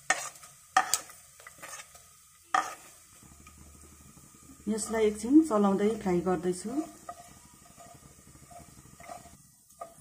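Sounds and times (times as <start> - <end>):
seeds sizzling in hot oil: 0.0 - 10.0.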